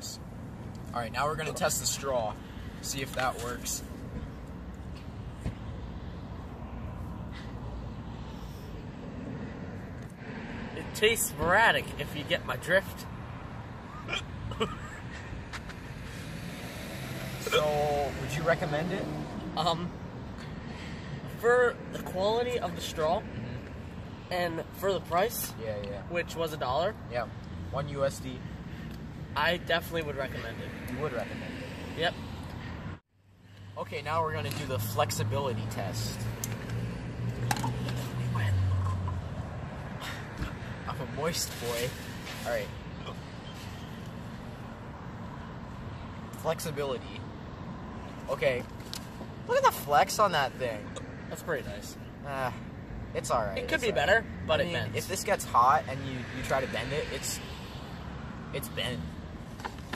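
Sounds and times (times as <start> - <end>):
distant traffic: 0.0 - 59.9.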